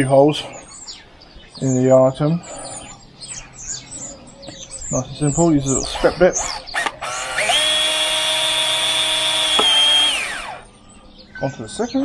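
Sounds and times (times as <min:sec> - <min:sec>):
cordless drill high whine: 0:05.8 - 0:10.6.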